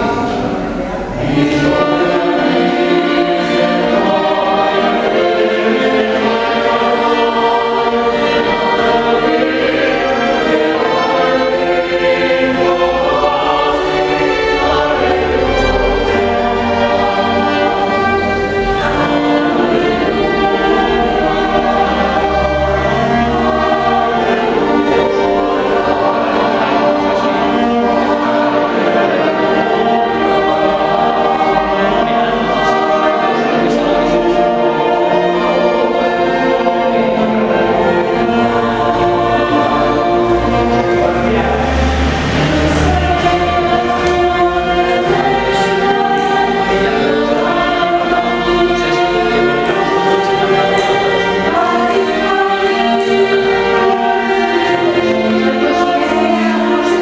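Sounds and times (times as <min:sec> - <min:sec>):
choir singing: 0:00.0 - 0:57.0
string accompaniment: 0:00.0 - 0:57.0
violins: 0:00.0 - 0:57.0.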